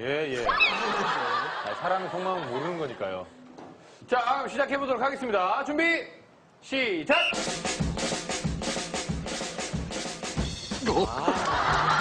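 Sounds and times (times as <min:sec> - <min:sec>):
fast drum-kit beat: 0:07.3 - 0:12.0.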